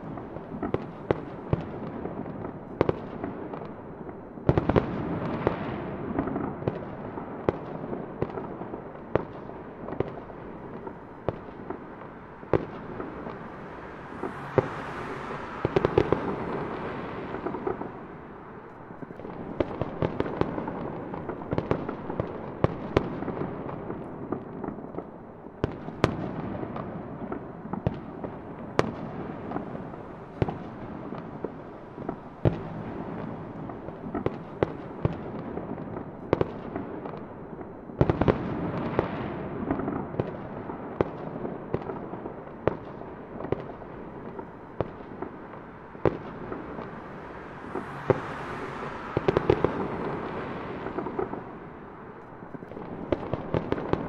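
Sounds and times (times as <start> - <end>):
fireworks popping and cracking: 0.0 - 54.0
fireworks bursts: 9.0 - 21.8, 38.0 - 54.0.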